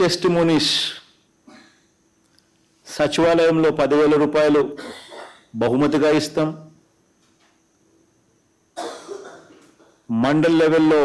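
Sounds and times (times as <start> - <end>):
person coughing: 1.4 - 1.9, 4.8 - 5.5, 8.8 - 9.7.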